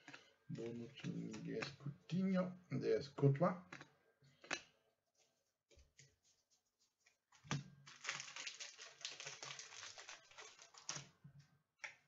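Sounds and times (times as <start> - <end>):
foil wrapper tearing and crinkling: 7.9 - 11.1.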